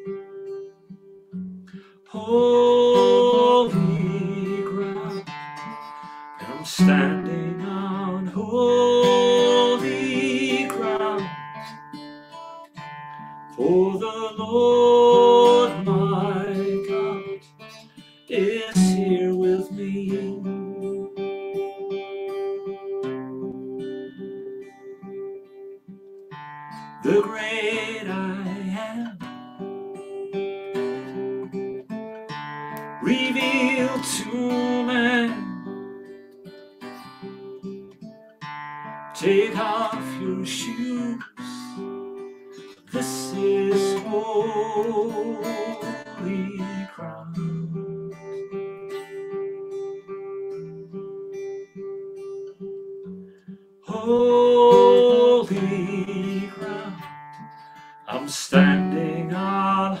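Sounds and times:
guitar chords: 0.0 - 60.0
man singing worship song: 2.1 - 5.3, 6.4 - 11.4, 13.6 - 17.4, 18.3 - 20.6, 27.0 - 29.2, 33.0 - 35.6, 39.2 - 41.8, 42.9 - 47.9, 53.9 - 57.0, 58.0 - 60.0.

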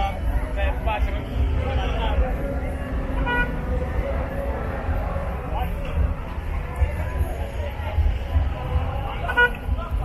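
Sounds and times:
crowd rumble: 0.0 - 10.0
traffic noise: 0.0 - 10.0.

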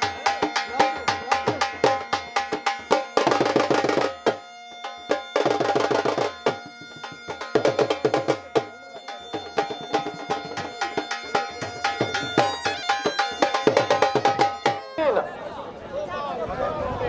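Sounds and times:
dhol drum beating: 0.0 - 15.2
bagpipe drone and melody: 0.0 - 15.4.

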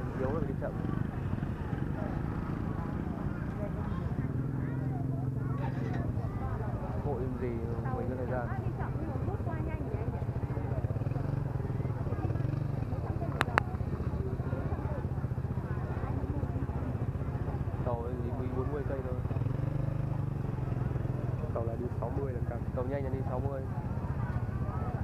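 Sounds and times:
crowd chatter: 0.0 - 25.0
motorbike engines idling: 0.0 - 25.0.

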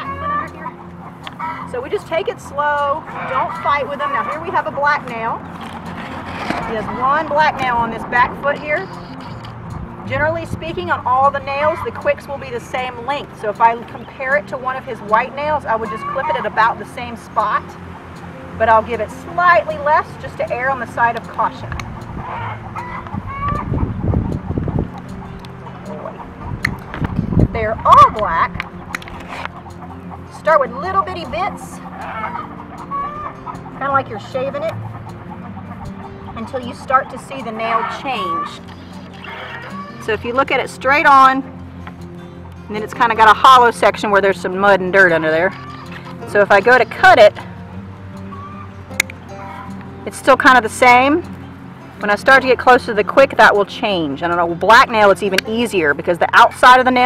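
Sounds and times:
chickens clucking: 0.0 - 41.4, 48.3 - 57.0
quiet background music: 0.0 - 57.0.

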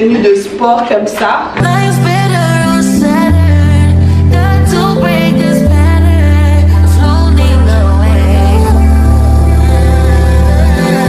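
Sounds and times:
background music with deep bass: 1.6 - 11.0.

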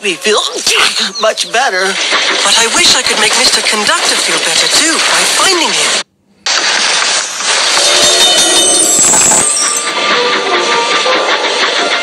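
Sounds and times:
railway trucks clattering on track: 1.2 - 6.0, 7.8 - 12.0.

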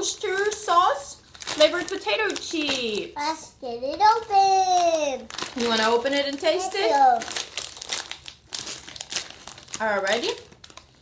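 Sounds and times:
chip bag crinkling: 0.0 - 3.2, 4.1 - 11.0.

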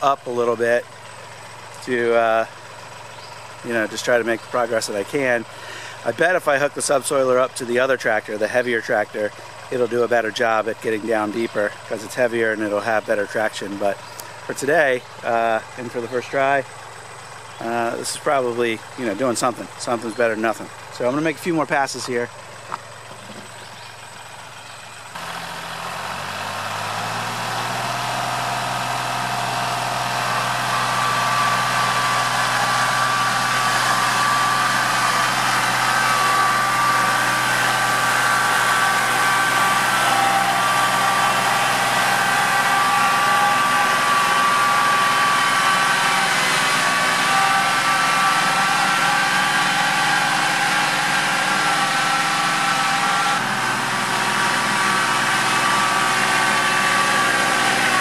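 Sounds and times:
tractor engine under load: 0.0 - 58.0.

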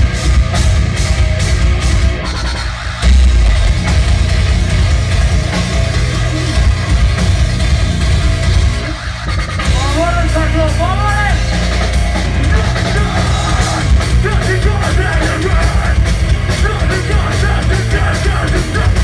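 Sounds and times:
bass guitar: 0.0 - 19.0
drum kit: 0.0 - 19.0
electric guitars: 0.0 - 19.0.

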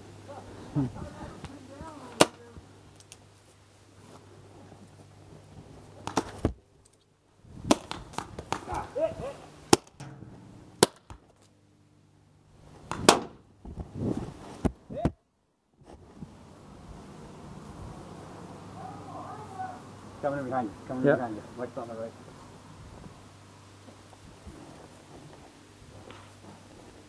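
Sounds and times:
paintball pistol pops: 7.7 - 8.7, 10.8 - 11.2, 12.9 - 13.4.

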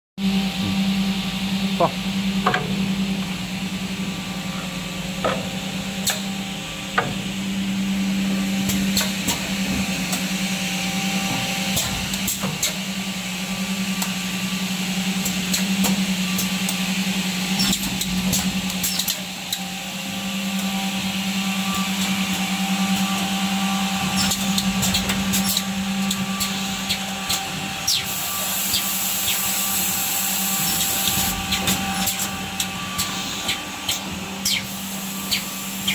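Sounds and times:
machine motor hum: 0.2 - 35.9.

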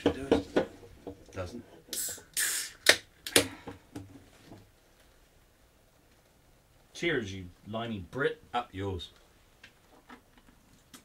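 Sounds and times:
cans knocking: 0.0 - 1.4.

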